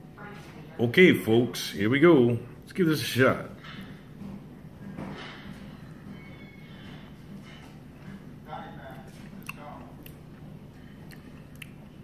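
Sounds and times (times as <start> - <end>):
person chewing: 8.9 - 12.0
mouth clicks: 11.1 - 11.8.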